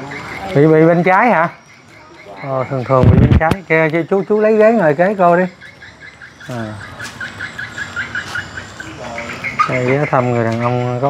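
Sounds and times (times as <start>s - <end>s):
small bird chirping: 0.0s - 11.0s.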